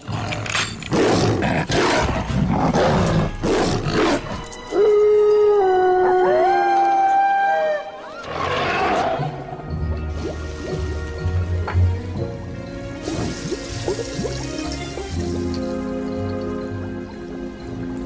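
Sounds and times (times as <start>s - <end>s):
music: 0.0s - 18.0s
werewolf howl: 4.7s - 9.4s.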